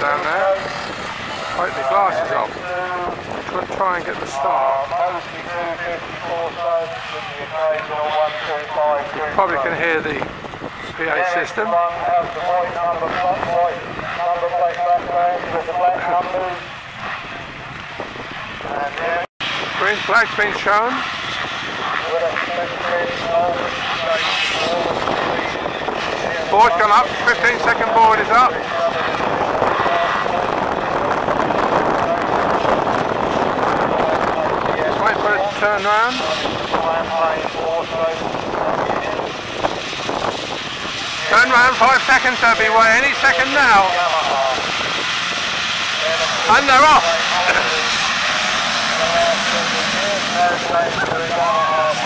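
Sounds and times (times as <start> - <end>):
motocross bikes revving: 0.0 - 52.0.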